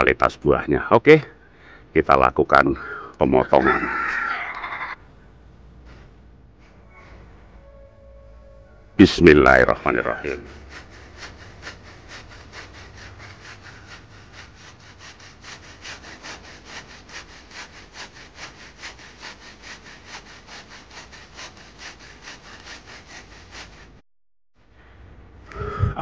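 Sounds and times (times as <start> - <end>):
hand saw cutting tree trunk: 9.8 - 24.0.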